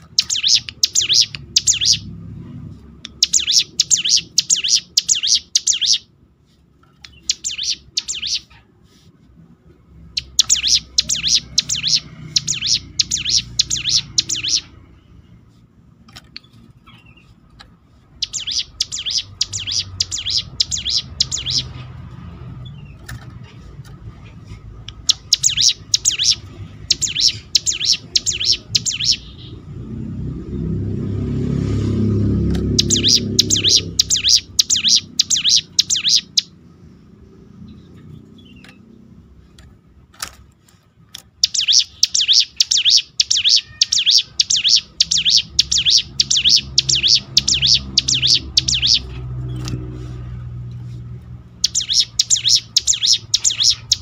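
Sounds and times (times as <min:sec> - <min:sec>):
bird singing sharp high notes: 0:00.0 - 0:02.2, 0:03.1 - 0:06.1, 0:07.1 - 0:08.6, 0:10.0 - 0:15.4, 0:18.2 - 0:21.9, 0:24.9 - 0:29.7, 0:32.6 - 0:36.6, 0:41.4 - 0:49.6, 0:51.6 - 0:54.0.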